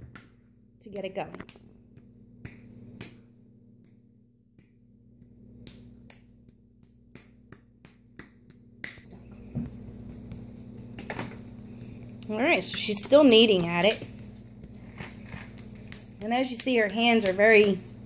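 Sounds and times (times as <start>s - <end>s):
hands slapping clay: 0.0s - 18.0s.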